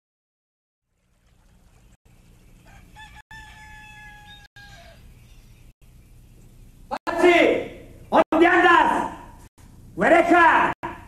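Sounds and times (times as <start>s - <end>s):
rooster crowing: 2.6s - 5.4s
low steady hum: 4.9s - 8.2s.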